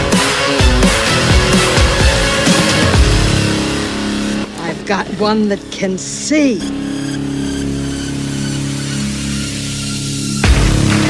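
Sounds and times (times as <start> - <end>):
low synthesized drone: 0.0 - 11.0.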